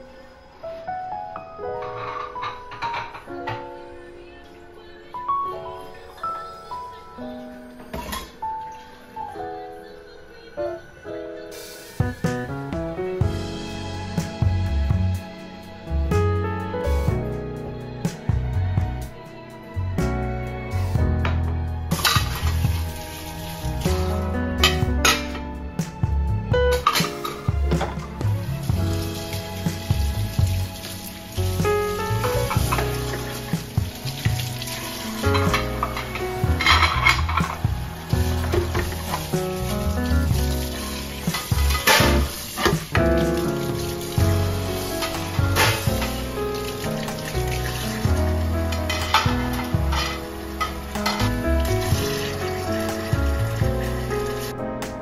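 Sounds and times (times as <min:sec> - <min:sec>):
soft background music: 0:00.0 - 0:55.0.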